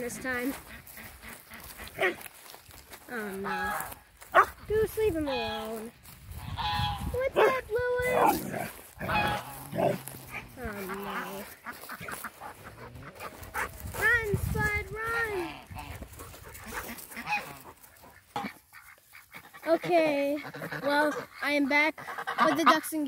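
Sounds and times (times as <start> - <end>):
ducks quacking: 0.0 - 23.0
geese honking: 0.0 - 23.0.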